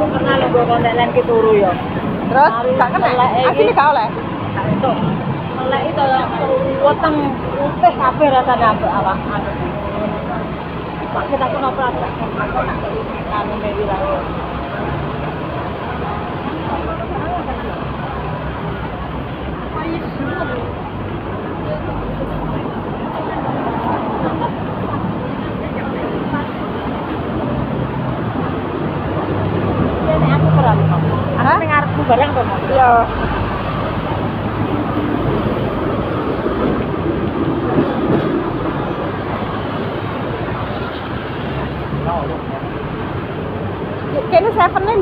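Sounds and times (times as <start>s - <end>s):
chatter of passers-by: 0.0s - 45.0s
road traffic noise: 0.0s - 45.0s.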